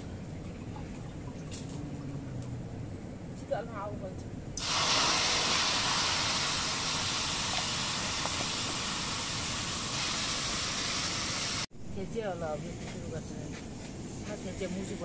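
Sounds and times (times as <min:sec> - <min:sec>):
potatoes sizzling in hot oil: 0:04.6 - 0:11.6.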